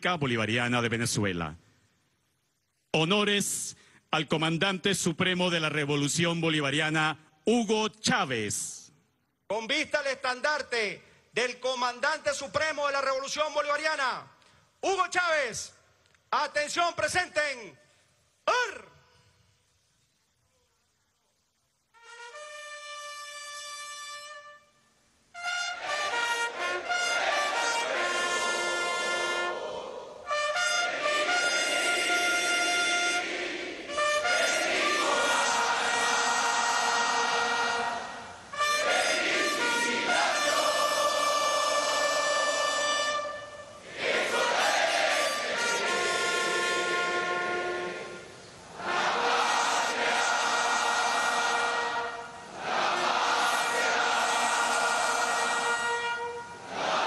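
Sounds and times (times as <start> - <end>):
military brass band playing: 21.9 - 57.0.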